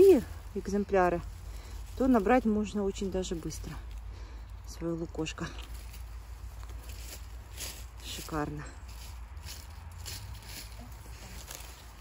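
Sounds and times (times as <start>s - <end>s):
faint rustles: 0.0s - 12.0s
steady low rumble: 0.0s - 12.0s.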